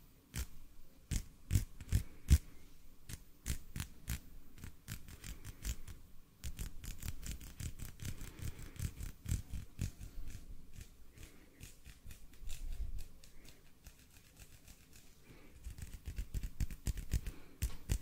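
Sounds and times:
hands rubbing near microphone: 0:03.1 - 0:18.0.

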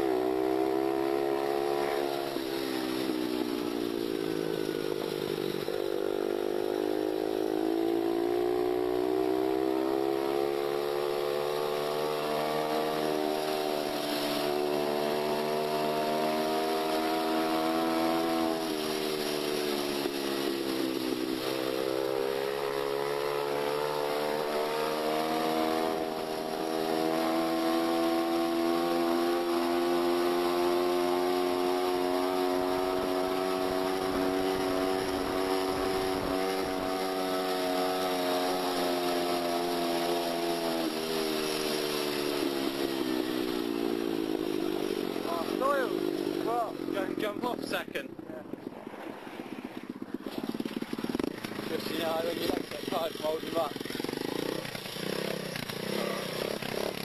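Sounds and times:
small motorcycle engine: 0:00.0 - 0:57.0.

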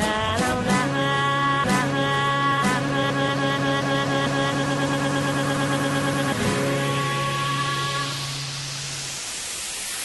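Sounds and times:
white noise hiss: 0:00.0 - 0:10.0.

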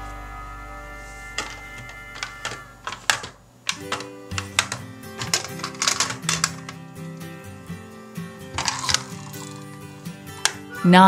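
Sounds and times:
background music with steady tones: 0:00.0 - 0:11.0
toy buses clicking and clattering: 0:01.4 - 0:07.4, 0:08.4 - 0:10.8.

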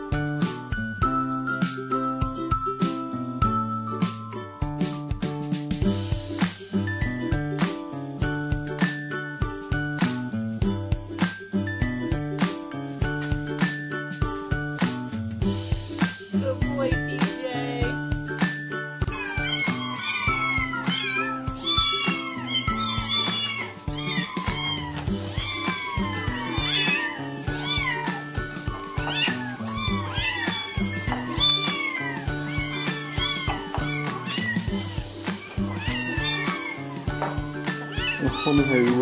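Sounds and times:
background music: 0:00.0 - 0:39.0
kittens meowing: 0:19.1 - 0:39.0.

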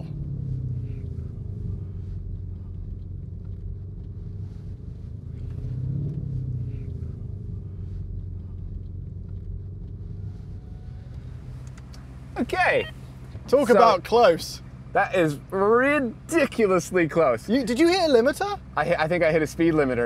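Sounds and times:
car engine humming in cabin: 0:00.0 - 0:20.0.

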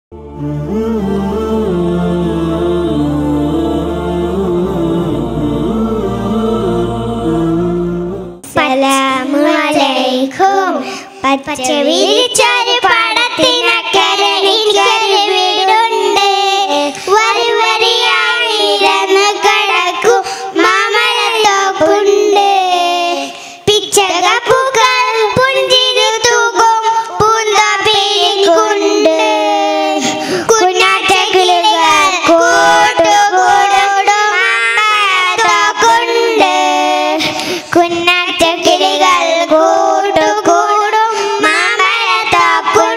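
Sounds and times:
girls singing into microphones: 0:00.2 - 0:11.0, 0:11.8 - 0:42.9.

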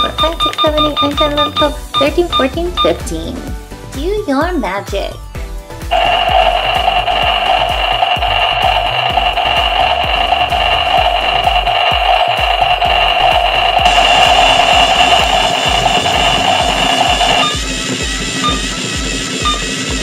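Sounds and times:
background music with beat: 0:00.0 - 0:20.0
toy blender high-pitched hum: 0:05.9 - 0:20.0.

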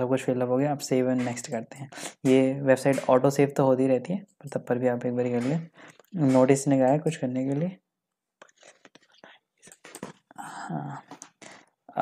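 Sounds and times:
person whispering: 0:10.3 - 0:11.7.

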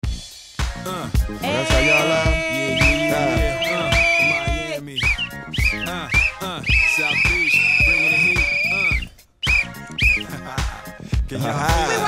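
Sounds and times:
upbeat music with heavy beat: 0:00.0 - 0:12.0
referee's whistle blowing: 0:01.4 - 0:10.3.

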